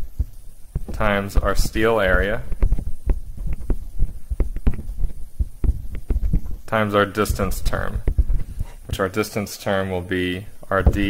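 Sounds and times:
stylus tapping on tablet: 0:00.7 - 0:06.6.

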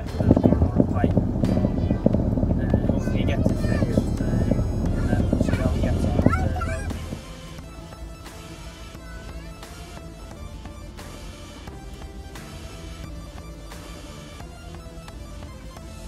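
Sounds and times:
car engine rumble from inside cabin: 0:00.0 - 0:07.3
voices talking: 0:00.0 - 0:10.5
background music: 0:00.0 - 0:16.0.

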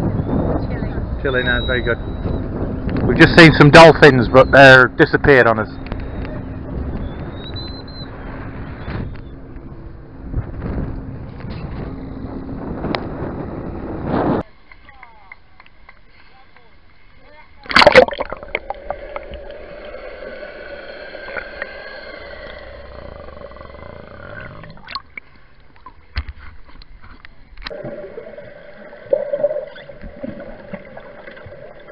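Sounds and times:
wind noise: 0:00.0 - 0:14.5
steady low hum: 0:15.4 - 0:31.9
sea water sloshing and splashing: 0:17.7 - 0:23.0, 0:27.7 - 0:31.9.

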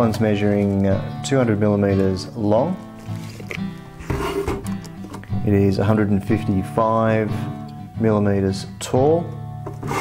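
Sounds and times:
background guitar music: 0:00.0 - 0:10.0.

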